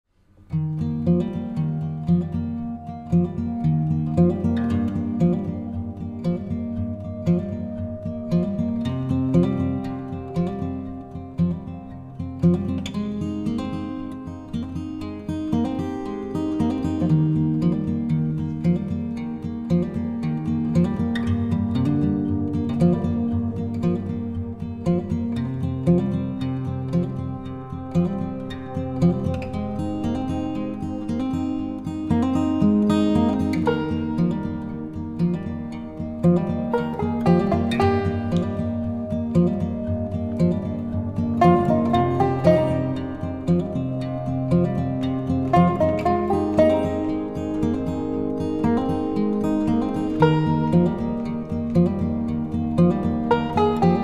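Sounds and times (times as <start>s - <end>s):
plucked acoustic guitar music: 0.3s - 54.0s.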